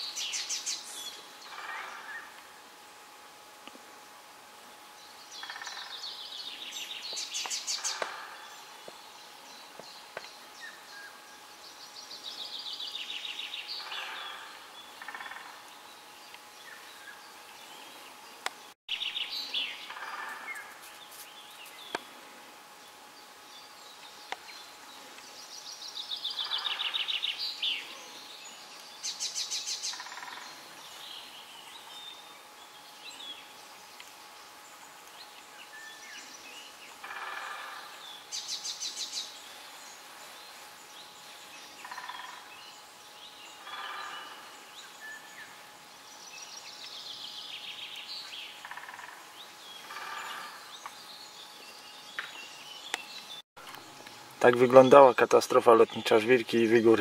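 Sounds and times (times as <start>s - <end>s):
songbirds singing: 0.0s - 2.8s, 4.6s - 57.0s.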